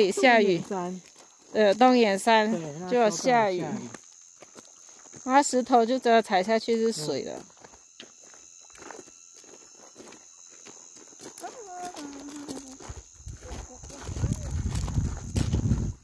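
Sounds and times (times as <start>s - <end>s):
footsteps on gravel: 0.4s - 2.0s, 3.7s - 5.3s, 7.3s - 16.0s
wind rumbling on microphone: 12.9s - 16.0s.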